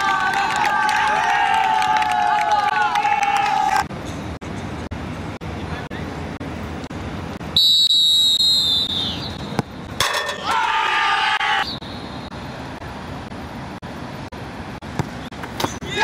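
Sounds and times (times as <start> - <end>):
long high shout: 0.0 - 3.8, 10.4 - 11.7
referee's whistle blast: 7.6 - 9.4.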